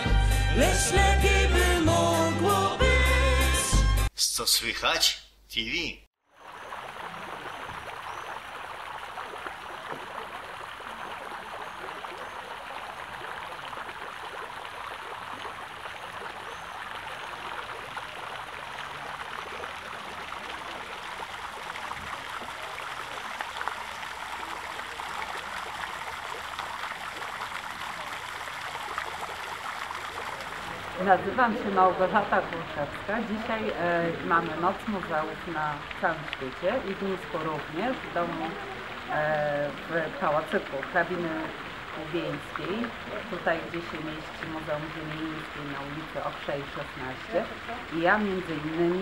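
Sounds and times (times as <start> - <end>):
fountain water splashing: 6.3 - 49.0.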